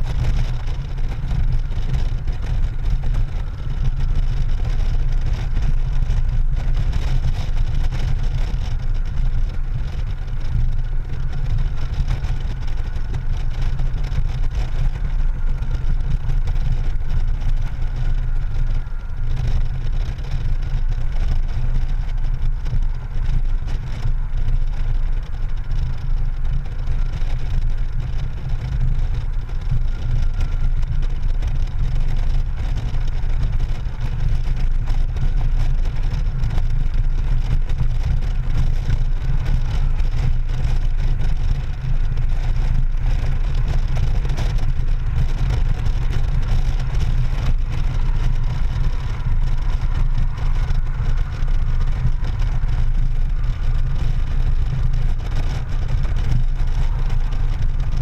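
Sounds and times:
motorcycle engine: 0:00.0 - 0:58.0
wind buffeting microphone: 0:00.0 - 0:58.0.

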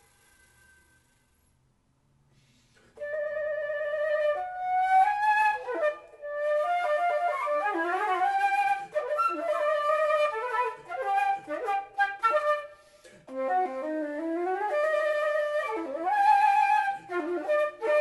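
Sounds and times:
solo flute melody: 0:03.0 - 0:18.0.

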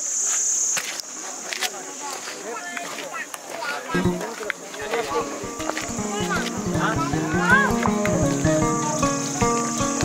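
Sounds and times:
insects shrilling: 0:05.1 - 0:10.0.

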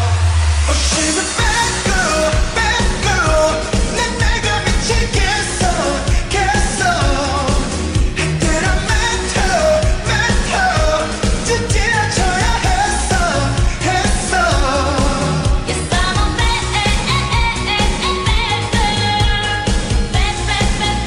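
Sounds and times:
heavy bass beat: 0:00.0 - 0:21.0
pop song with sung chorus: 0:00.0 - 0:21.0.

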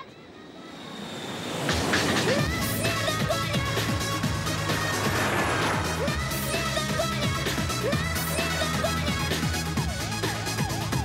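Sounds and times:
rushing noise build-up: 0:00.5 - 0:07.6
electronic pop drums: 0:01.7 - 0:11.0.

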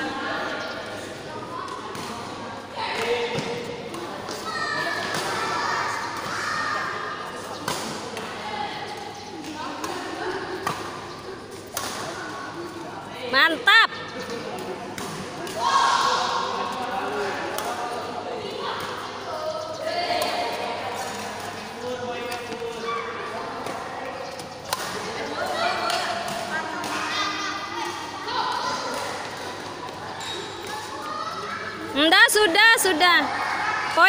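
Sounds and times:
children's voices echoing: 0:04.3 - 0:07.2, 0:25.3 - 0:34.0
badminton rackets hitting shuttlecock: 0:23.5 - 0:31.0.

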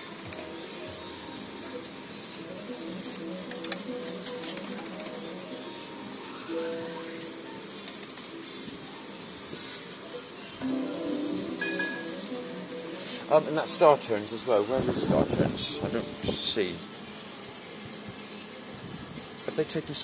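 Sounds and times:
fruit machine electronic music: 0:00.0 - 0:08.8, 0:10.6 - 0:16.8
arcade background noise: 0:00.0 - 0:20.0.

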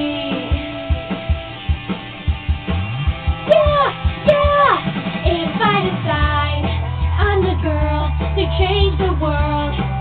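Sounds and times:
steady drum beat: 0:00.0 - 0:10.0
strummed guitar: 0:00.0 - 0:10.0.

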